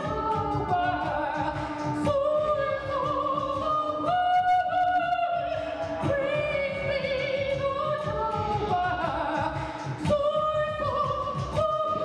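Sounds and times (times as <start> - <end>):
instrumental accompaniment: 0.0 - 12.0
opera singing: 0.0 - 12.0.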